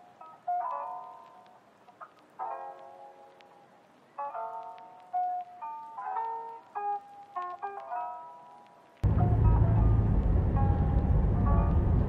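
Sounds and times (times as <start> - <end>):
soft keyboard chords: 0.0 - 12.0.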